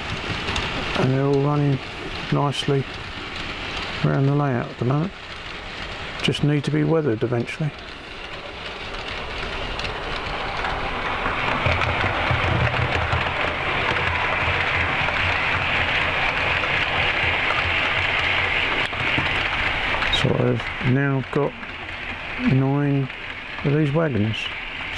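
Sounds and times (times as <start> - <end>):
model train wheels rumbling on rail: 0.0 - 24.9.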